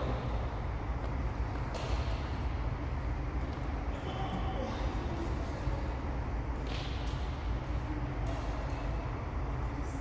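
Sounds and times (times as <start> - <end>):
racket hitting shuttlecock: 1.5 - 2.5, 6.6 - 7.4.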